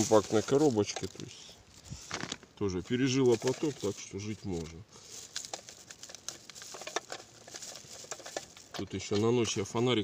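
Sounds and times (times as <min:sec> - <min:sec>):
faint rustling: 0:00.0 - 0:09.7.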